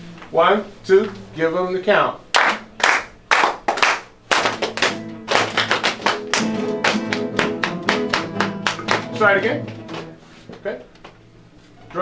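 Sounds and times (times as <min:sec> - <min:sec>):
steady taps: 0:04.3 - 0:10.1
acoustic guitars strumming: 0:04.3 - 0:11.9
percussive guitar strokes: 0:04.8 - 0:10.7.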